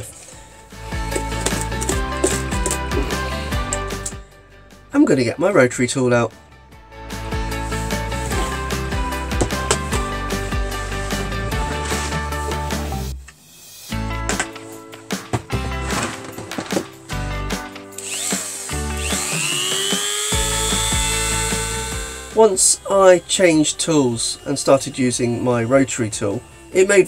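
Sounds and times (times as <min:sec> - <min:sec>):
rotary tool whining: 0:00.0 - 0:04.2, 0:07.2 - 0:14.8, 0:17.9 - 0:27.0
upbeat background music: 0:00.0 - 0:13.2, 0:13.9 - 0:27.0.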